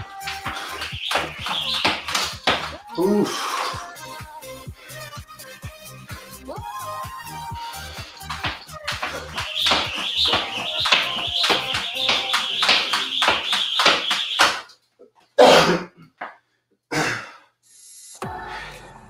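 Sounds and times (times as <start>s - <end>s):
jump rope slapping floor: 0.0s - 2.8s, 8.2s - 14.7s
music: 0.0s - 13.6s, 18.2s - 19.0s
heavy breaths: 0.4s - 0.8s, 3.0s - 3.9s, 7.6s - 8.4s.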